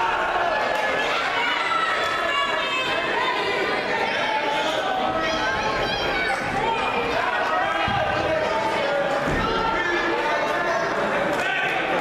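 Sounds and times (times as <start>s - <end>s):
crowd chattering and shouting: 0.0s - 12.0s.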